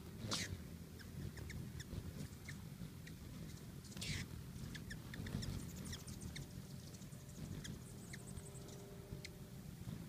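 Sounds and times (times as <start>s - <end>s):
hummingbird chips and chitters: 0.0s - 10.0s
whirring wingbeats: 0.0s - 10.0s.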